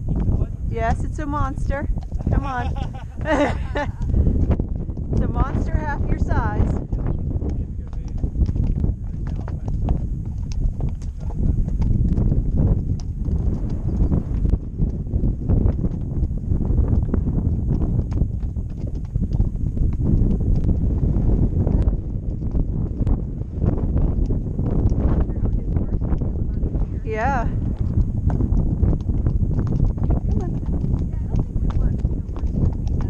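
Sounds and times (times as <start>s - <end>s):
horse hooves clopping on stones: 0.0s - 33.0s
wind on microphone: 0.0s - 33.0s.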